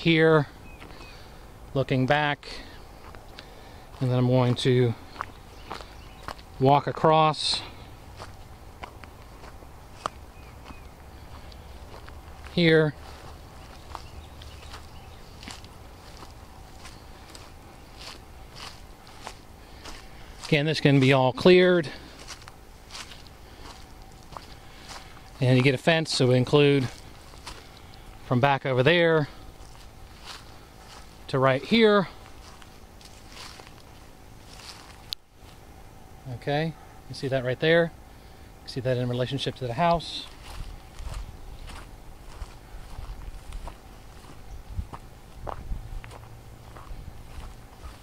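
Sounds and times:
faint outdoor hiss: 0.0 - 48.0
footsteps through tall grass: 0.7 - 1.4, 2.4 - 35.8, 39.3 - 48.0.

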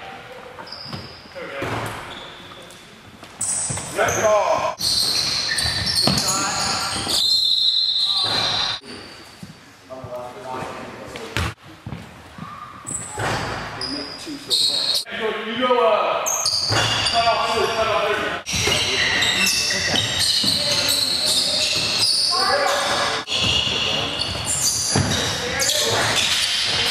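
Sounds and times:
sneakers squeaking: 0.1 - 15.1, 16.2 - 26.9
players calling out: 16.3 - 26.9.

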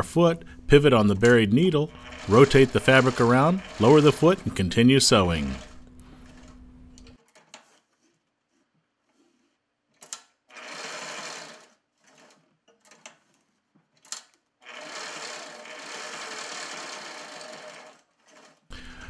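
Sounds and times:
sewing machine stitching: 1.2 - 8.4, 9.0 - 18.7.

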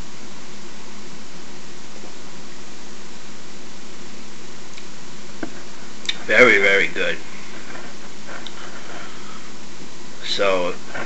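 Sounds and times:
faint low hum: 0.0 - 11.0
steady background hiss: 0.0 - 11.0
faint click: 4.7 - 6.2.

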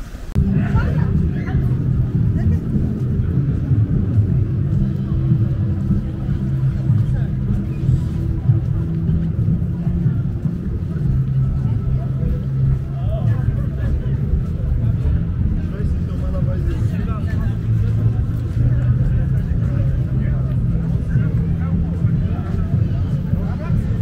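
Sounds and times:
passersby talking: 0.0 - 24.0
steady low rumble: 0.0 - 24.0.

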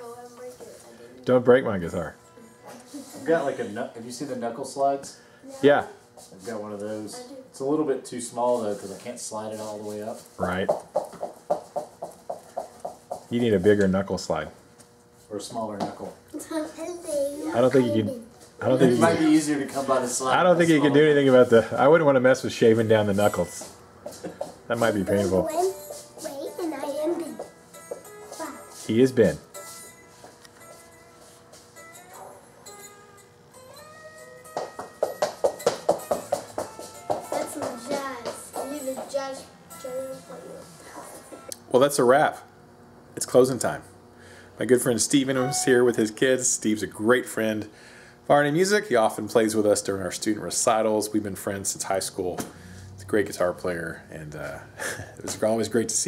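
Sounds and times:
electric guitar playing: 25.0 - 38.9, 45.3 - 46.0
electric guitar single notes: 45.2 - 46.2.

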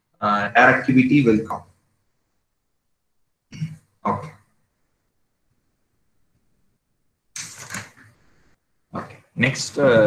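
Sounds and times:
man speaking: 0.2 - 1.8, 3.5 - 4.4, 8.9 - 10.0
man clearing throat: 3.5 - 3.8.

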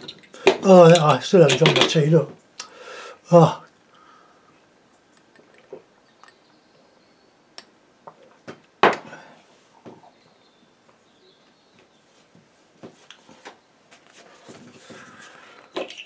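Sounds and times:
small hard objects clicking: 0.0 - 2.0, 15.6 - 16.0.

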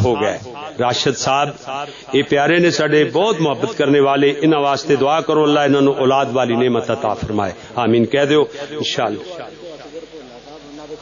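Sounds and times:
man's amplified voice: 0.0 - 11.0
murmured voices answering: 0.0 - 11.0.

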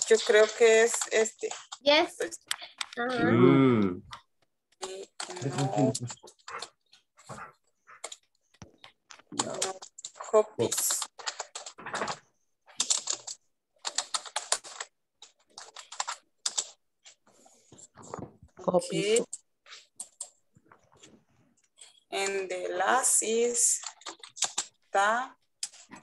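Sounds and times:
typing on computer keyboard: 0.0 - 3.0, 8.0 - 17.2, 19.2 - 20.4, 23.3 - 24.8.

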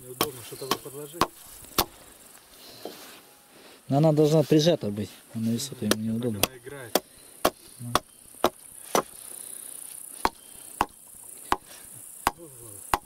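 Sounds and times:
hatchet chopping wood: 0.2 - 2.0, 5.8 - 9.1, 10.2 - 13.0.

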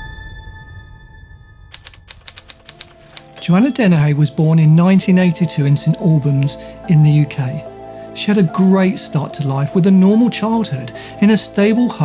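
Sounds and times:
typewriter keys striking: 1.7 - 3.9.

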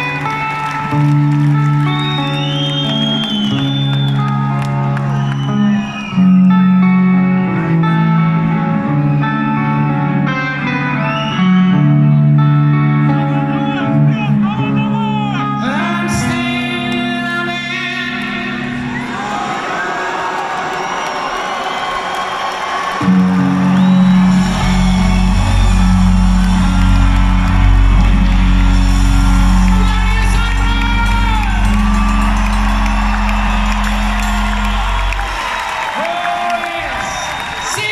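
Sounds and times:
crowd whooping and cheering: 0.0 - 7.5, 18.8 - 37.9
live rock band playing: 0.0 - 19.0, 23.0 - 36.0
bending high guitar notes: 23.0 - 36.0.

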